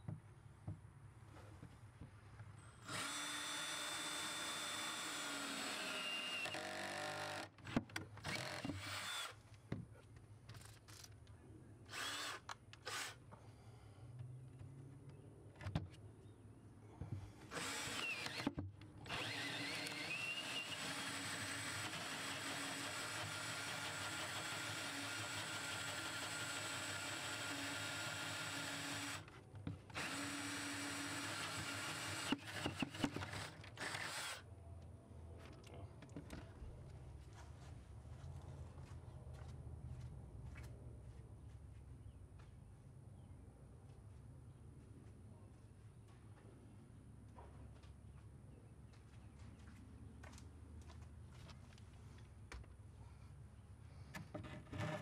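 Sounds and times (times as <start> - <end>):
drill boring through wood: 2.8 - 7.6, 8.2 - 9.4, 11.9 - 13.2, 17.5 - 29.3, 29.9 - 34.4
drill clicks: 2.8 - 9.4, 11.9 - 13.2, 17.5 - 29.3, 29.9 - 34.4.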